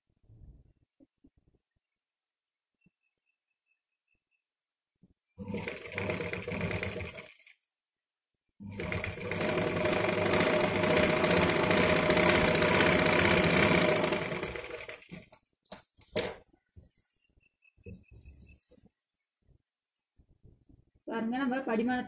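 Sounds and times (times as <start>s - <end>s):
sewing machine stitching: 5.4s - 7.6s, 8.6s - 15.3s.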